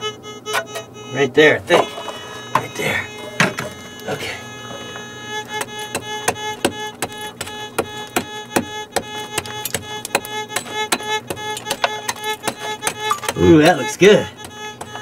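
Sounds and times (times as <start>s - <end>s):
fiddle music: 0.0s - 15.0s
hand pick chopping into rock: 5.6s - 13.8s.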